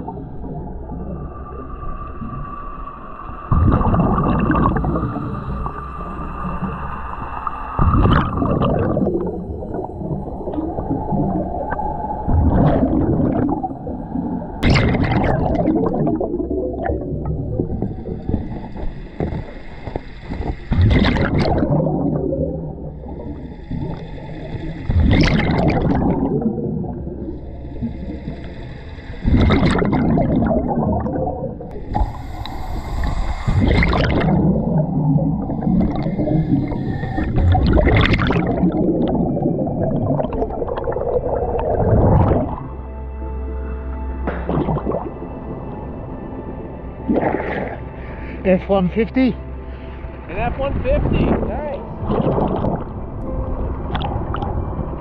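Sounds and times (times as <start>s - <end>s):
exhaled bubbles gurgling: 0.0s - 43.0s, 44.3s - 45.8s, 46.9s - 48.0s, 51.2s - 55.0s
regulator hiss on inhale: 17.7s - 20.8s, 23.0s - 24.9s, 27.3s - 29.9s, 31.7s - 34.7s, 35.4s - 37.6s.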